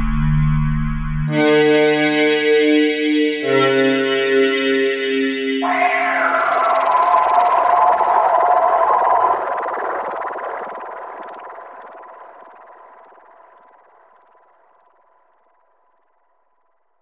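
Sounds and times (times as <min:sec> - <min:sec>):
distorted electronic drone: 0:03.0 - 0:15.4.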